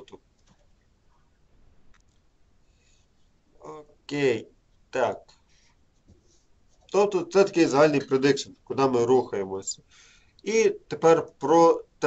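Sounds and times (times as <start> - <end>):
man speaking: 3.6 - 5.3, 6.9 - 9.8, 10.4 - 12.0.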